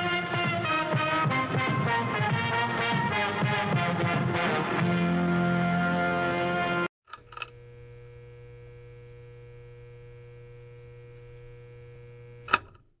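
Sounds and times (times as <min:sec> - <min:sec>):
electrical hum: 0:07.1 - 0:13.0.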